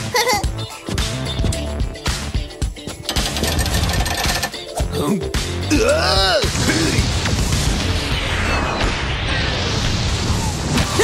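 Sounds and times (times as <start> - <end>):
background music with steady bass: 0.0 - 11.0
fast machine-like rattling: 3.0 - 4.7.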